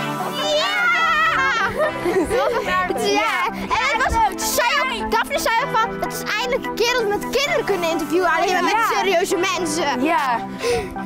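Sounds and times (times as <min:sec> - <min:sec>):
children's excited voices: 0:00.0 - 0:10.0
background music: 0:00.0 - 0:11.0.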